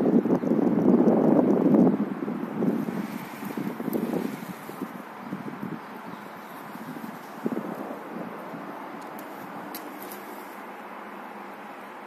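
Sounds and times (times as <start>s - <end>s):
steady rushing noise: 0.0s - 12.0s.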